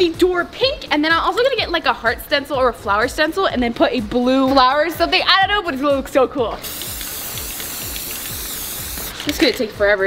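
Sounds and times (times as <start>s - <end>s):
background music: 0.0s - 10.0s
spray paint can hissing: 6.6s - 9.5s.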